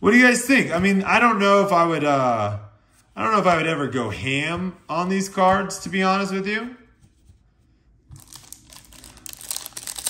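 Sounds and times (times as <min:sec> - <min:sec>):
plastic crinkling: 0:08.1 - 0:10.0.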